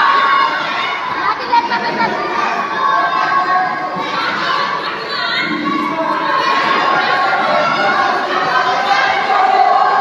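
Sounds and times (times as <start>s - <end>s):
children's voices: 0.0s - 10.0s
crowd shouting and cheering: 0.0s - 10.0s.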